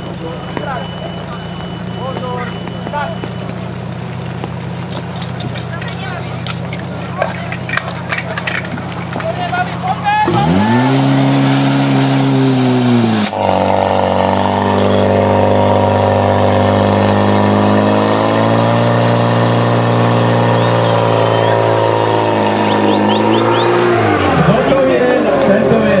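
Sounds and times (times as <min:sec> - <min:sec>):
pump engine revving: 0:00.0 - 0:26.0.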